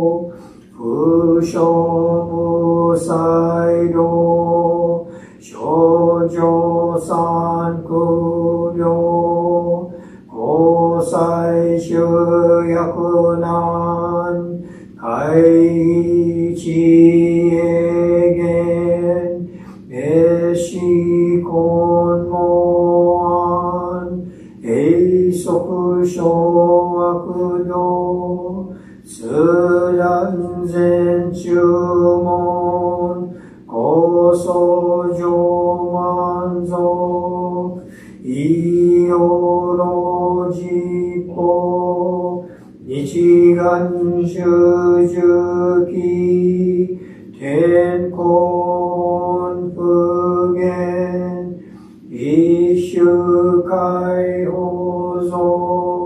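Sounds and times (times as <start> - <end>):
man chanting: 0.0 - 56.0
breath: 0.3 - 0.7, 5.1 - 5.4, 9.9 - 10.3, 14.6 - 15.0, 19.5 - 19.9, 24.3 - 24.6, 28.7 - 29.1, 33.3 - 33.7, 37.8 - 38.2, 42.4 - 42.8, 47.0 - 47.3, 51.6 - 52.1.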